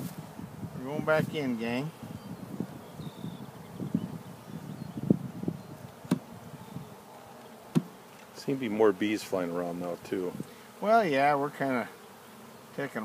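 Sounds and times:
honeybees buzzing: 0.0 - 13.0
wooden knocks of hive frames: 5.9 - 6.3, 7.4 - 8.3.

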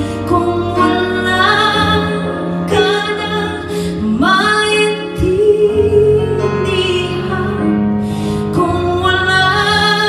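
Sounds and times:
woman singing into a microphone: 0.0 - 10.0.

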